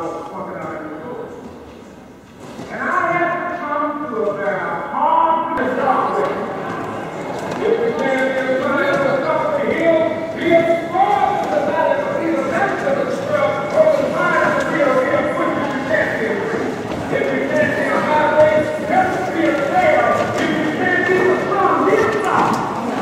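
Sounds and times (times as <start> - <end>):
crowd talking: 0.0 - 23.0
footsteps on floor: 12.6 - 23.0.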